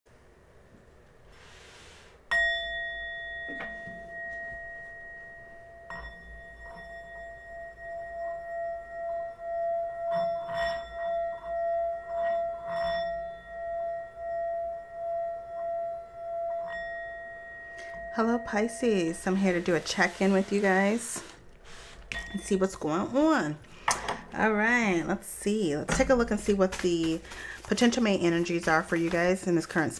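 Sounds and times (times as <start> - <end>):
singing bowl struck with mallet: 2.3 - 19.4
mallet run around bowl rim: 2.3 - 21.3.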